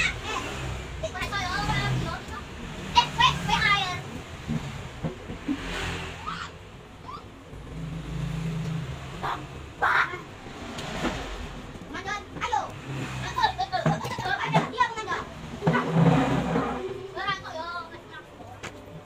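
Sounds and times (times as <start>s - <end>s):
children talking and calling out: 0.0s - 4.4s, 6.2s - 7.4s, 9.1s - 10.6s, 11.7s - 19.0s.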